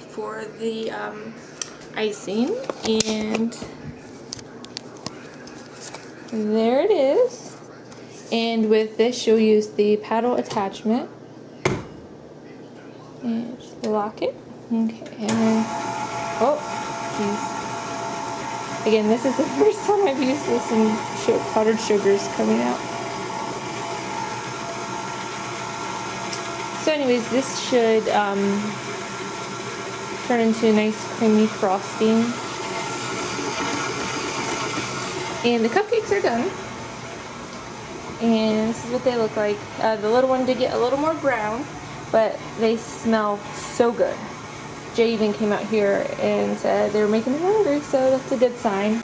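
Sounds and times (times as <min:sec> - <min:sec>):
electric stand mixer running: 0:15.3 - 0:49.0.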